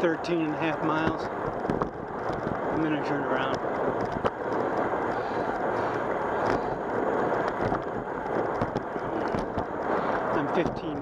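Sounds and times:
tyres rolling over asphalt: 0.0 - 11.0
wind on microphone: 0.0 - 11.0.

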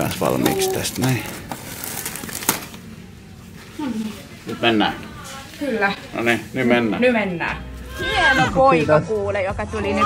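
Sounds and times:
man speaking: 0.0 - 1.3.

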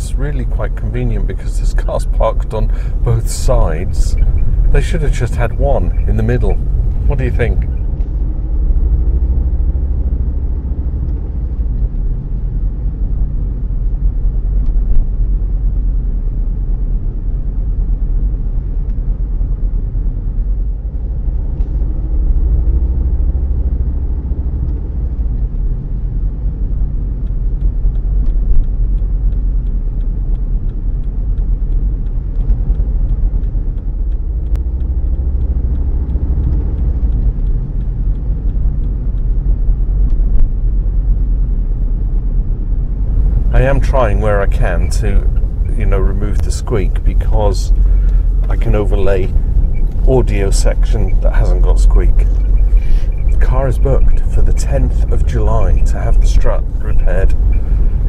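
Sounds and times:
car engine and tyre rumble: 0.0 - 58.0.

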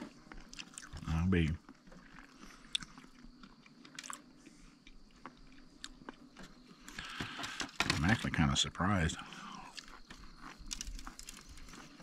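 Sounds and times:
person chewing fried food: 0.0 - 7.3, 9.6 - 12.0
small biting clicks: 0.2 - 7.2, 9.7 - 12.0.

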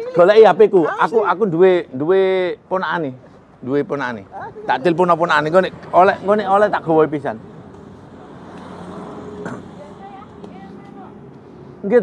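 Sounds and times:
vehicle engine humming: 2.6 - 12.0.

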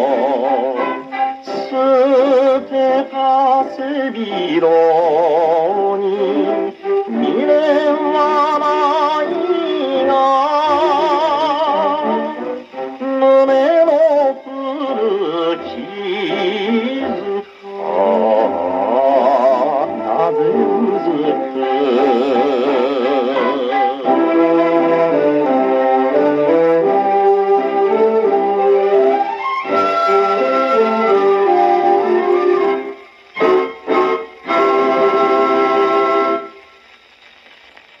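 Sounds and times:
held chord from a record: 0.0 - 38.0
old popular song on phonograph: 0.0 - 38.0
record surface hiss and crackle: 0.0 - 38.0.

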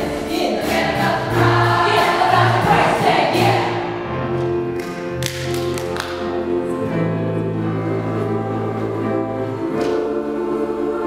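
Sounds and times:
women's chorus singing: 0.0 - 3.9, 6.2 - 11.0
piano holding steady notes: 0.0 - 11.0.

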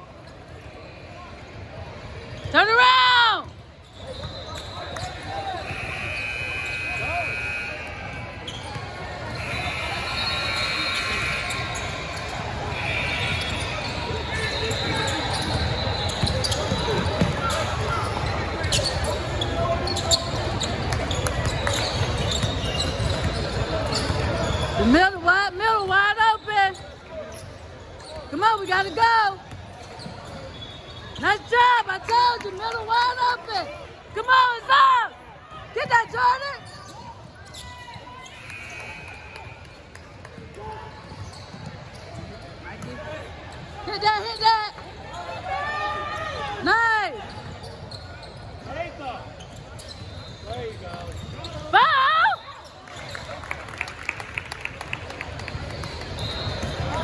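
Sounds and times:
din of a busy gym: 0.0 - 57.0
sneakers squeaking: 0.1 - 53.5, 55.2 - 57.0.

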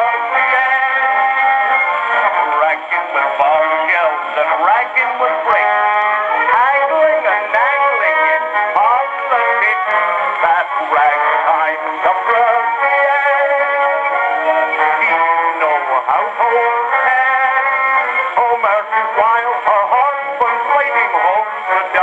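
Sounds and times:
gramophone record of ragtime song: 0.0 - 22.0
man singing with band: 2.3 - 12.8, 14.9 - 16.8, 18.4 - 22.0.

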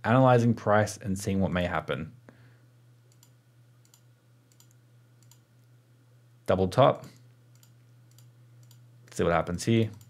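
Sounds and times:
low steady hum: 0.0 - 10.0
soft computer clicking: 3.1 - 5.8, 7.0 - 8.9, 9.8 - 10.0.

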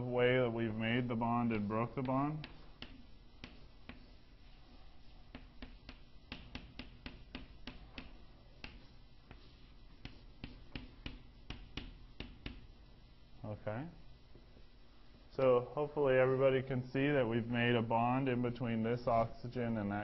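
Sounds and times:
pen tapping on surface: 2.4 - 4.0, 5.3 - 9.4, 10.0 - 12.7.

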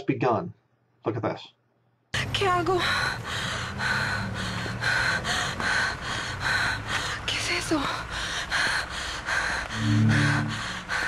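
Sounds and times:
person panting heavily: 2.9 - 7.2, 8.1 - 11.0
steady low hum: 9.6 - 11.0
gliding electronic tone: 9.8 - 10.6.

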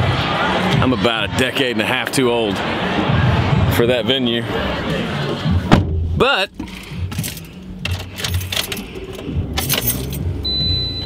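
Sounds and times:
rustling and clicking objects: 6.6 - 10.2
car warning chime beep: 10.4 - 11.0.

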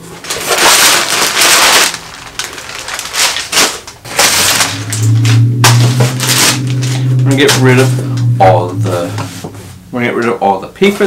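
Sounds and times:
packing paper rustling and crackling: 0.0 - 7.5
steady low hum: 3.8 - 10.9.

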